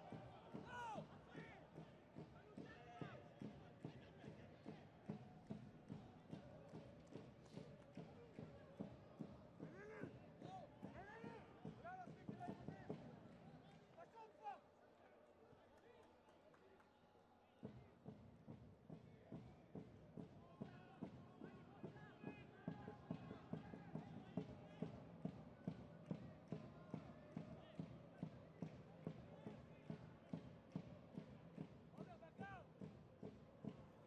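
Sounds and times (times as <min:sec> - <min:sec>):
faint shouts of players: 0:00.0 - 0:05.3, 0:07.6 - 0:14.9, 0:31.9 - 0:32.8
rhythmic knocking beat: 0:00.0 - 0:13.4, 0:17.6 - 0:34.0.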